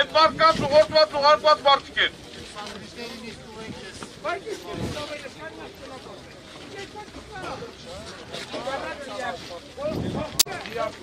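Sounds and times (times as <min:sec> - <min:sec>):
men talking in a crowd: 0:00.0 - 0:11.0.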